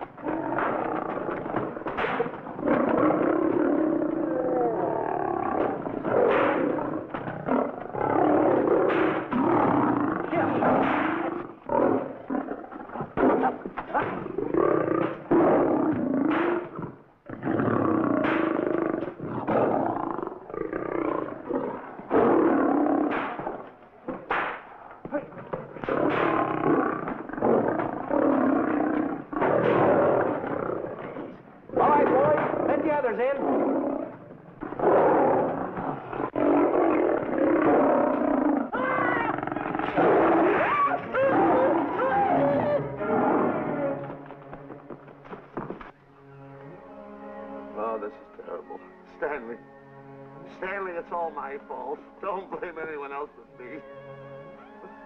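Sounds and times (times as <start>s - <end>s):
sharp cracks: 0.0s - 4.2s, 5.3s - 12.2s, 16.2s - 17.0s, 23.0s - 28.1s
lions roaring and snarling: 0.0s - 44.2s.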